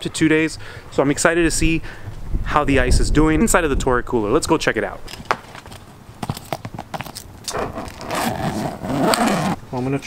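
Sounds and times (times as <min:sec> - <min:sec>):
strap scraping rustle: 0:05.1 - 0:10.0.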